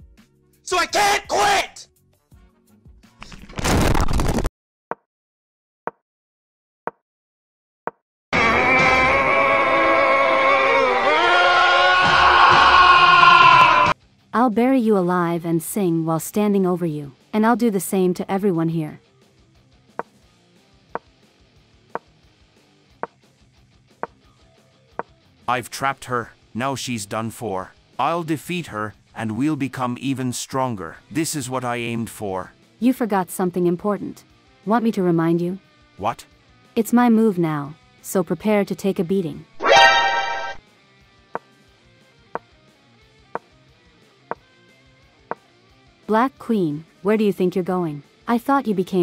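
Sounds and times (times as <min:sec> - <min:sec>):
faint background music: 0:14.0 - 0:39.6, 0:40.6 - 0:49.0.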